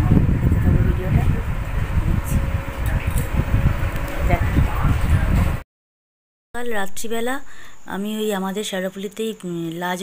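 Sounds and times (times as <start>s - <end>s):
fan blowing across microphone: 0.0s - 5.6s.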